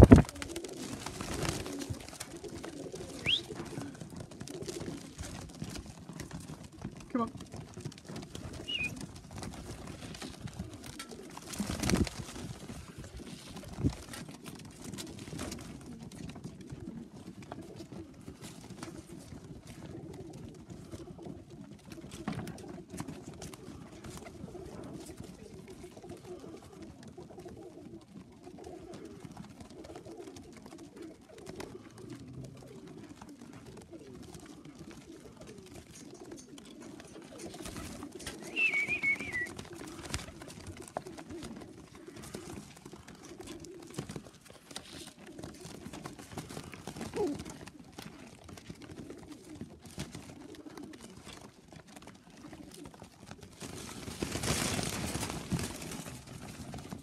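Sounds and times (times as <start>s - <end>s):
wing flutters: 0.0s - 5.4s, 8.3s - 14.1s, 36.4s - 51.2s, 52.8s - 57.0s
pigeons cooing: 0.0s - 57.0s
scattered pecking sounds: 0.0s - 57.0s.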